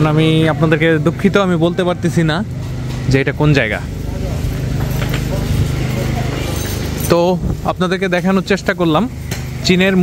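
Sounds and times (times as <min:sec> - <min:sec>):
low motor hum: 0:00.0 - 0:10.0
people talking: 0:00.0 - 0:10.0.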